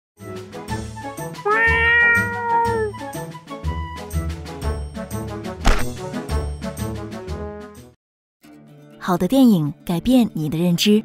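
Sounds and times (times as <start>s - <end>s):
cartoon cat meow: 1.4s - 3.0s.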